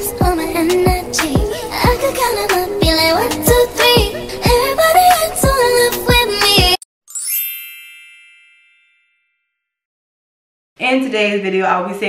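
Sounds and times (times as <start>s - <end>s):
bright chime ringing: 7.1s - 9.6s.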